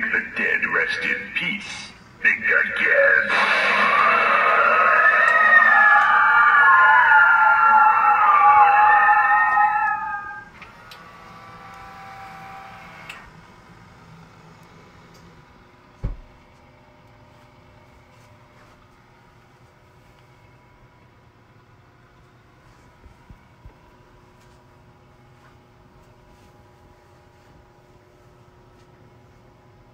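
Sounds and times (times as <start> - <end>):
eerie wavering wails: 2.8 - 13.2.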